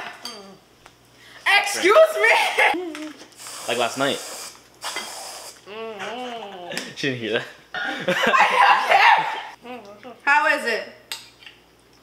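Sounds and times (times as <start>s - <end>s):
aerosol cream can hissing: 3.4s - 5.6s.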